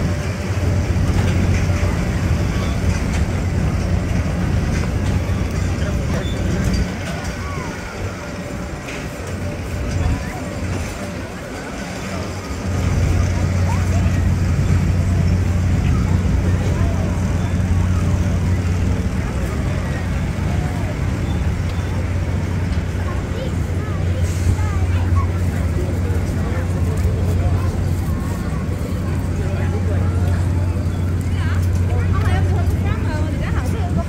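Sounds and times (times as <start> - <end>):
crowd chatter: 0.0 - 34.0
low mechanical hum: 0.0 - 34.0.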